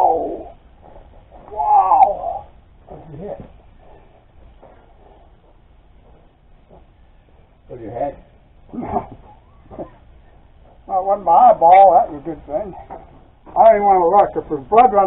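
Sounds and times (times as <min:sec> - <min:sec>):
man groaning in pain: 0:01.5 - 0:02.5.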